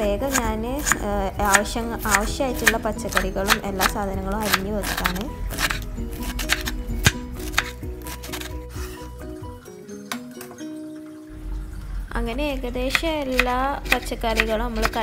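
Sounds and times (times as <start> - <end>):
simple melody background music: 0.0 - 15.0
knife chopping cabbage on wooden board: 0.3 - 9.0, 12.9 - 15.0.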